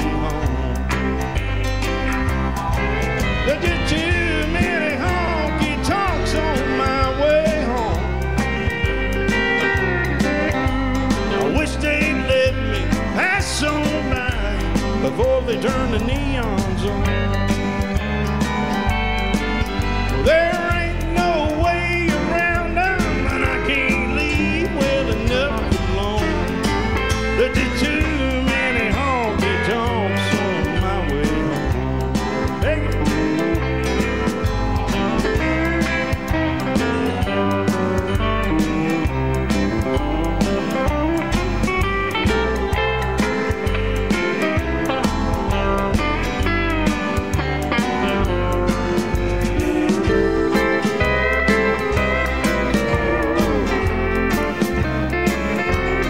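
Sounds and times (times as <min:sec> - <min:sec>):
bass and drum beat: 0:00.0 - 0:56.0
electric guitar lead with bending notes: 0:00.0 - 0:56.0
live country band playing: 0:00.0 - 0:56.0.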